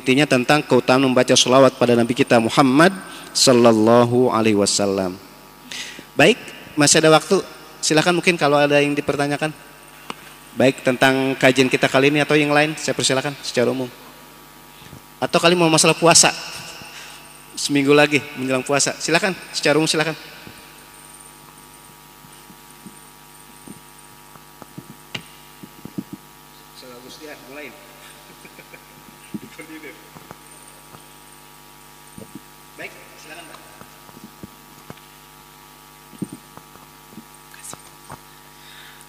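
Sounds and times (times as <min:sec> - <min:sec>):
electrical hum: 0:00.0 - 0:39.0.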